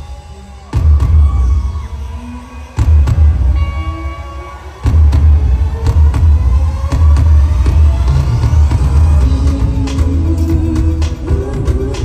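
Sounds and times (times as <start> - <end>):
heavy bass and drum hits: 4.8 - 12.0.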